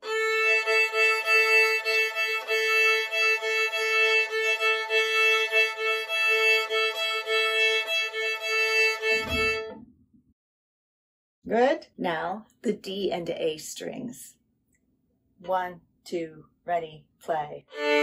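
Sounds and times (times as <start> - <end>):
violin bowing double stops: 0.0 - 9.8
soft low thump: 9.2 - 9.9.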